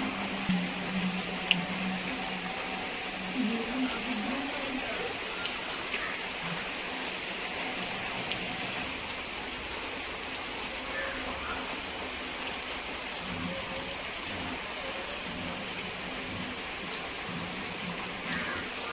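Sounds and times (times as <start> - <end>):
heavy rain on foliage: 0.0 - 18.9.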